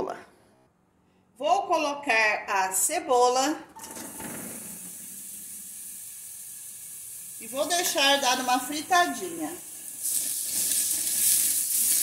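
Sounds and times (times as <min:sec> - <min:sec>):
onion sizzling in hot oil: 0:03.8 - 0:12.0.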